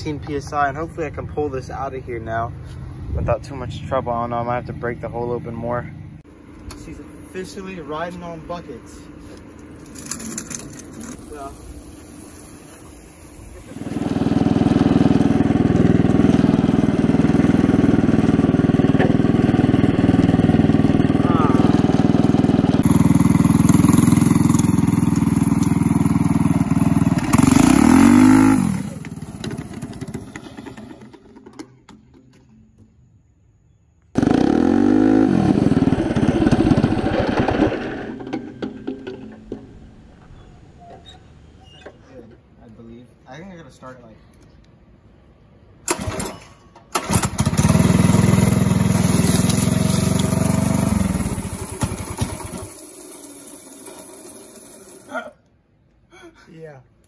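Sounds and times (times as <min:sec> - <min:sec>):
go-kart engine revving: 0:13.3 - 0:31.6, 0:34.1 - 0:39.6, 0:45.9 - 0:55.2.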